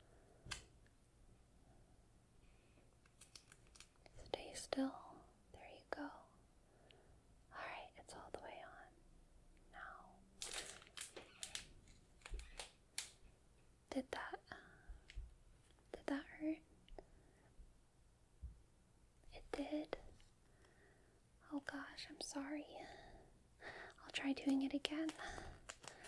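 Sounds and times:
soft whispering: 4.0s - 6.4s, 7.5s - 9.0s, 9.6s - 11.7s, 13.9s - 15.1s, 15.8s - 17.2s, 19.2s - 20.2s, 21.4s - 23.3s, 23.9s - 26.0s.

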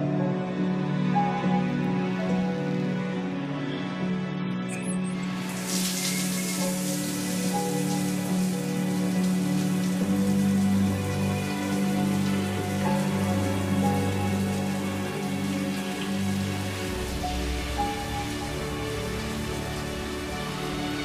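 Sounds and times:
shower spraying water: 5.2s - 21.0s.

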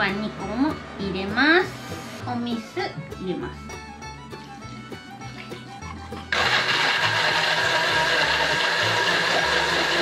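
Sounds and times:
electric blender running: 6.3s - 10.0s.

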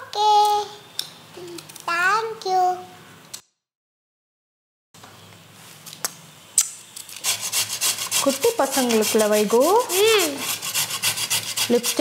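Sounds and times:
grating on a metal grater: 7.2s - 12.0s.

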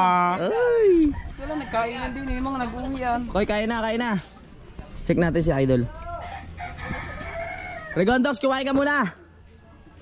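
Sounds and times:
rooster crowing: 1.1s - 2.8s, 6.1s - 8.1s.

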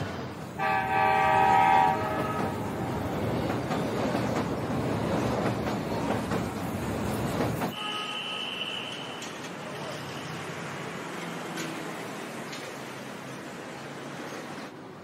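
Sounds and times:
train rumbling along track: 0.0s - 7.9s, 8.9s - 15.0s
train horn blast: 0.6s - 2.6s, 7.7s - 9.2s.

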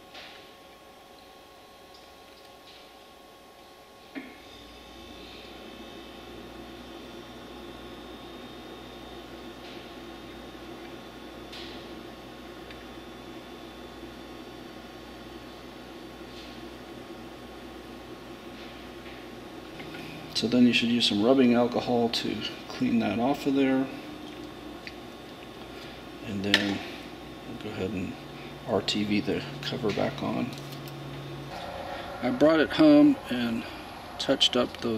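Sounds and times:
electrical hum with whining tones: 0.0s - 34.9s.

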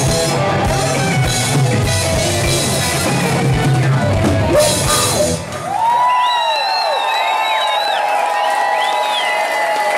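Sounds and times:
drums and bass: 0.0s - 6.2s
audience whooping: 4.6s - 9.9s
rising and falling whistles: 6.1s - 9.4s.

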